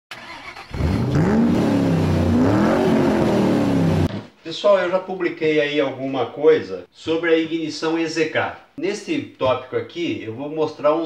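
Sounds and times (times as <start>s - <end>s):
engine revving: 0.1s - 4.1s.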